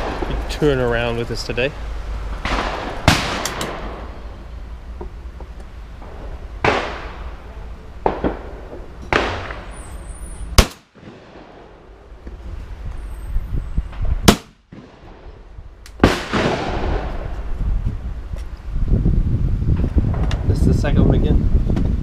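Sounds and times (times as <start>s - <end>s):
duller distant shots: 2.4s - 4.1s, 6.0s - 7.4s, 8.0s - 11.8s, 14.2s - 15.4s, 16.0s - 17.1s
shotgun shots: 2.4s - 4.1s, 6.6s - 7.2s, 8.0s - 9.8s, 10.6s - 11.7s, 14.2s - 15.3s, 16.0s - 17.1s.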